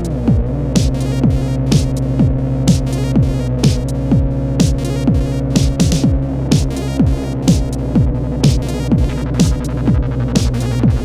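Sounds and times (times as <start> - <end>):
kick drum: 0.0 - 11.0
throbbing bass drone: 0.0 - 11.0.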